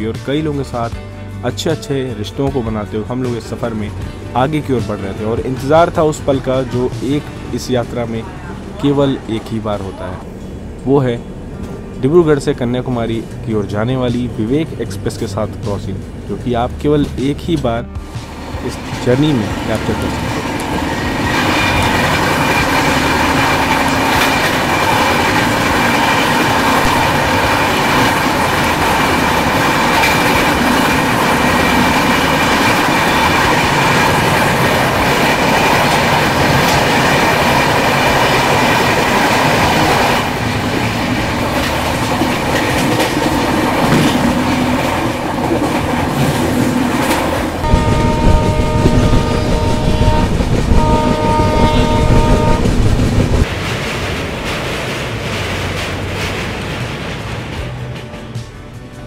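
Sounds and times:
trains rushing past: 2.5 - 59.0
wheels clickety-clack: 18.0 - 59.0
train horn: 47.6 - 53.0.

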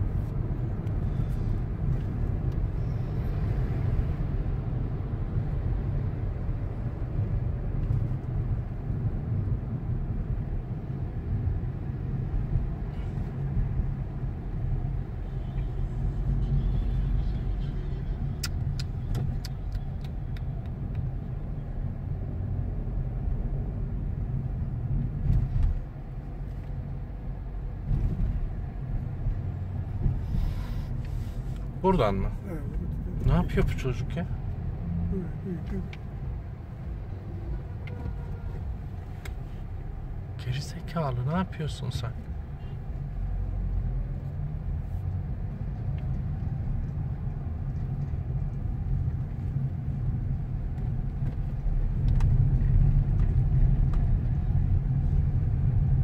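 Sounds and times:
engine and road rumble: 0.0 - 56.0.

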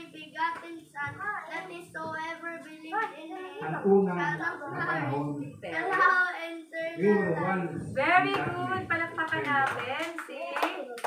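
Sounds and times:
hand clapping: 8.2 - 11.0.

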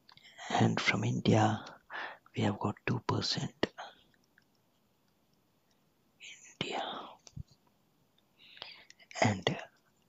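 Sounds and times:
soft breathy hiss: 0.0 - 10.0
person whispering: 0.3 - 4.0, 6.2 - 7.5, 8.6 - 9.8.

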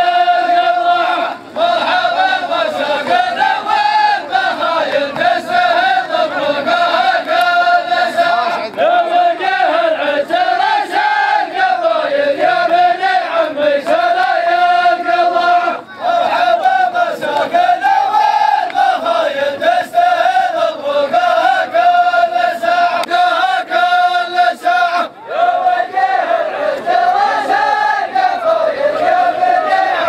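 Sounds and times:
men chanting in unison: 0.0 - 30.0.

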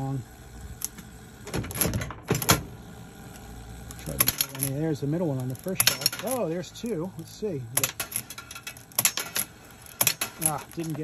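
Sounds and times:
steady mechanical run: 0.0 - 11.0.

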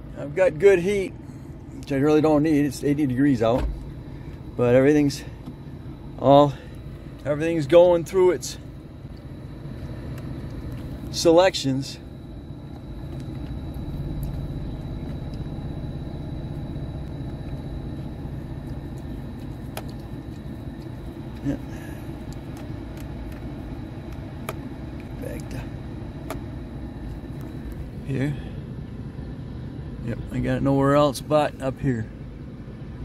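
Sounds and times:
engine and road rumble: 0.0 - 33.0
heater blower running: 0.0 - 33.0.

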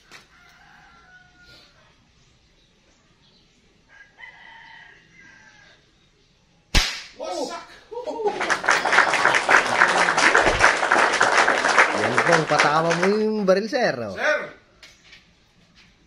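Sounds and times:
faint rooster crow: 0.0 - 2.1, 3.8 - 6.0
airgun shot: 6.7 - 7.2
person exclaiming: 7.2 - 8.5.

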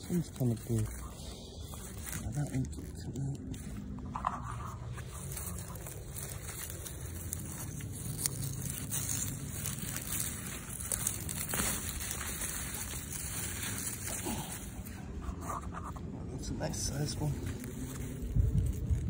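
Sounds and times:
leaves rustling and crinkling: 0.0 - 19.0
steady low rumble: 0.0 - 19.0.

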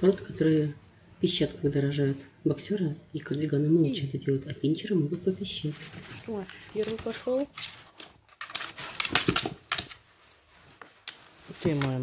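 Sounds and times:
towel rustling and scraping: 5.6 - 12.0.

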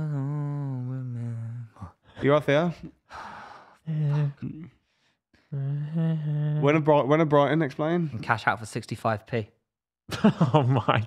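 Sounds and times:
man sighing: 2.8 - 4.8, 5.4 - 6.6.

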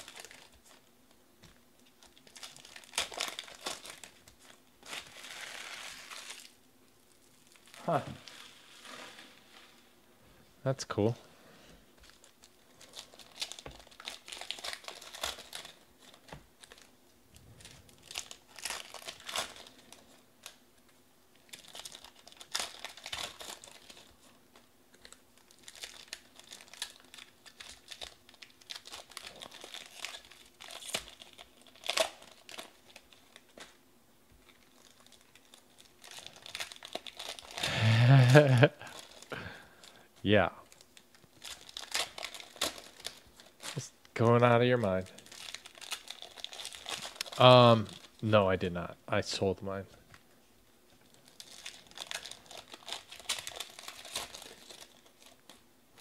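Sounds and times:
wrappers crinkling and tearing: 0.0 - 0.9, 1.8 - 9.8, 12.0 - 16.9, 17.5 - 33.8, 34.4 - 48.3, 50.9 - 56.0.

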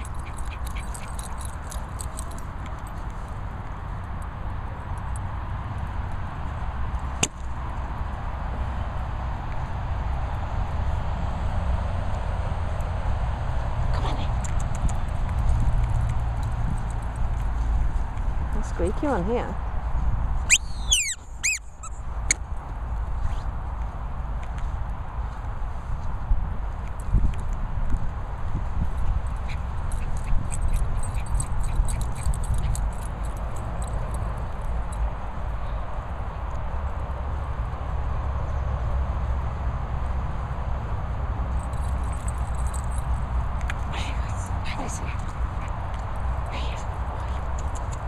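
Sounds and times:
rubber squeaky toy squeaking: 20.5 - 22.0
wind buffeting microphone: 25.0 - 35.9.

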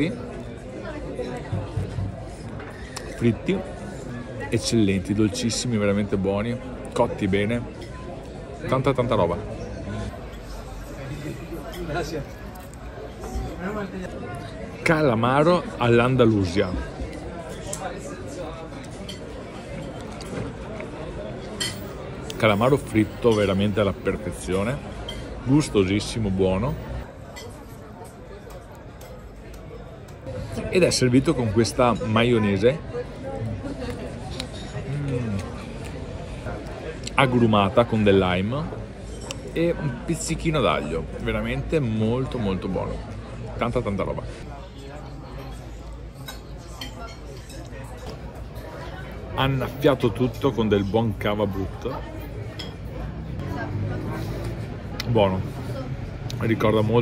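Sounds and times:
diners chattering: 0.0 - 57.0
murmur of voices: 0.0 - 57.0
dishes and cutlery clinking: 21.4 - 22.0, 45.3 - 48.9, 50.0 - 53.0.

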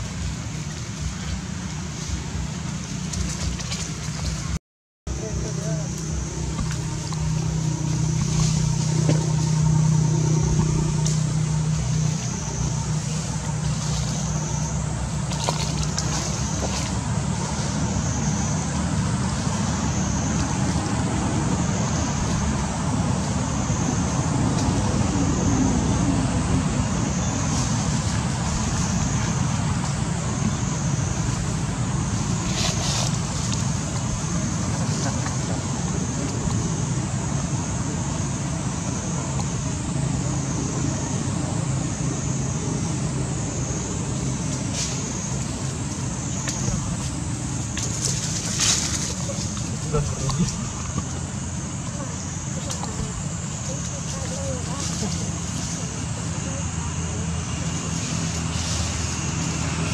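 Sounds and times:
low hum: 0.0 - 59.9
low rumble: 0.0 - 59.9
faint pulsing high-pitched buzz: 5.1 - 59.9.

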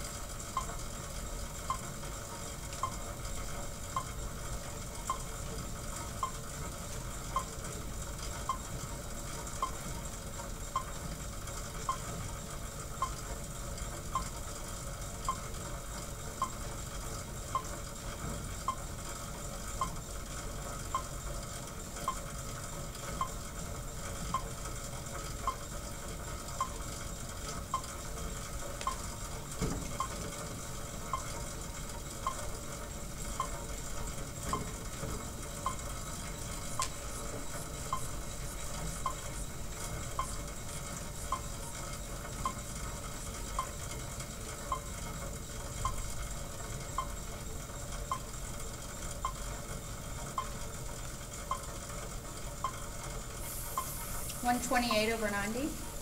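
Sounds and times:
exercise bike flywheel whirring: 0.0 - 56.0
faint high tick: 2.7 - 3.0, 28.8 - 29.0, 36.8 - 37.0.

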